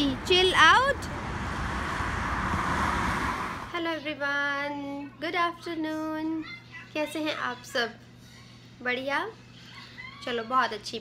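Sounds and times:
car driving past: 0.2 - 3.8.

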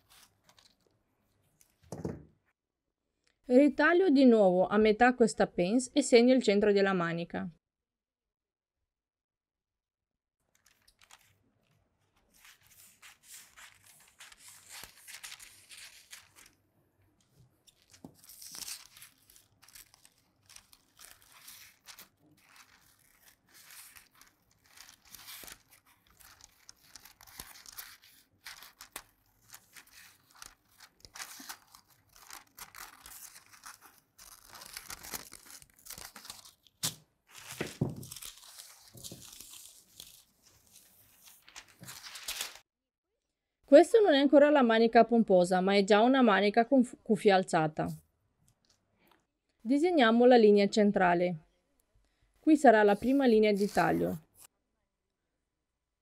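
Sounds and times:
paper rustling: 0.0 - 2.2, 10.4 - 16.6, 17.2 - 42.6, 52.9 - 54.5.

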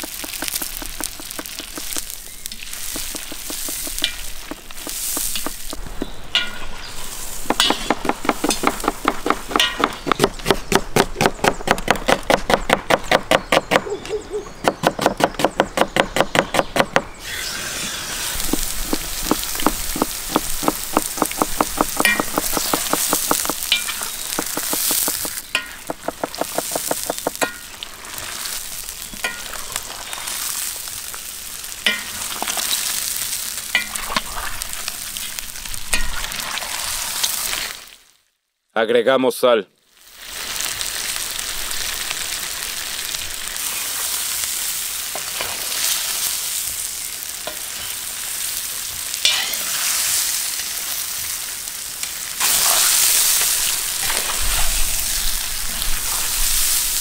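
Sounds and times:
fast stirring strokes: 0.0 - 5.8, 18.2 - 27.4
meat sizzling in oil: 17.2 - 38.1, 39.9 - 57.0.

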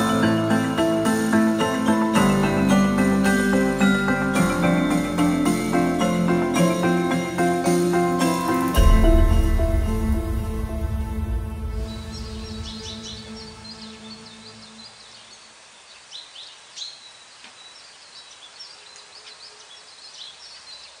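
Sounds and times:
background music: 0.0 - 15.1
birds chirping: 0.0 - 21.0
steady outdoor hiss: 0.0 - 21.0.

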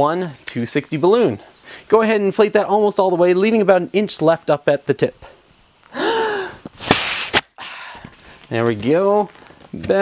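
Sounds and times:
balloon being inflated: 6.4 - 7.6.

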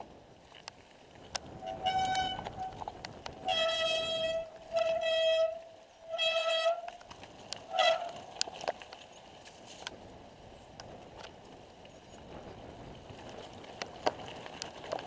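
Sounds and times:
bike knocks and rattles: 0.5 - 5.6, 6.2 - 9.9
tyre rumble on stony trail: 0.5 - 10.2, 10.8 - 15.0
bike brakes squealing: 1.6 - 2.8, 3.4 - 7.0, 7.7 - 8.3.

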